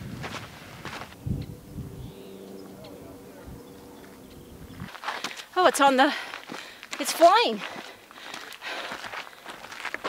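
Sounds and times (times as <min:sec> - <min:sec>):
footsteps on dirt trail: 0:00.0 - 0:01.2, 0:04.0 - 0:10.0.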